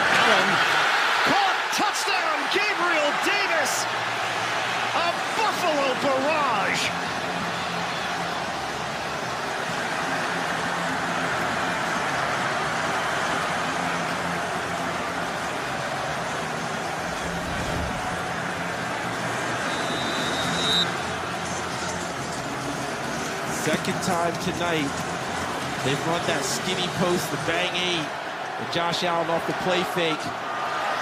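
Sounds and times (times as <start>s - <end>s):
stadium crowd cheering: 0.0s - 31.0s.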